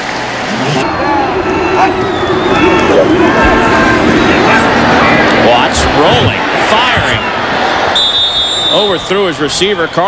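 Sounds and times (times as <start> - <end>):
stadium crowd noise: 0.0 - 10.0
referee's whistle blast: 7.9 - 10.0.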